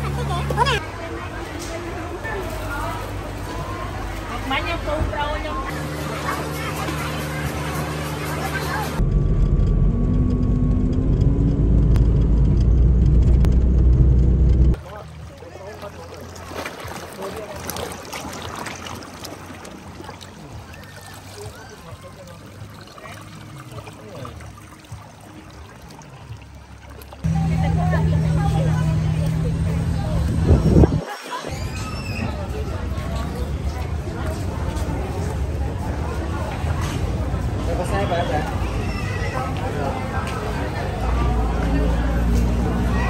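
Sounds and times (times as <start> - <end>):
chatter of passers-by: 0.0 - 9.1, 14.7 - 43.0
car engine and road rumble: 7.3 - 14.8, 27.2 - 31.0, 39.6 - 43.0.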